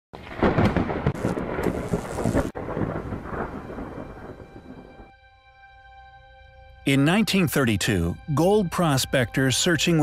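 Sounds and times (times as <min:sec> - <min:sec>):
loud crackling rumble: 0:00.2 - 0:05.1.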